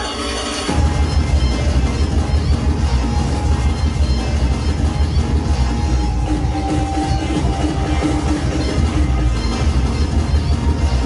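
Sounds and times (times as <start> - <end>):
loud breakcore over sound system: 0.0 - 11.0.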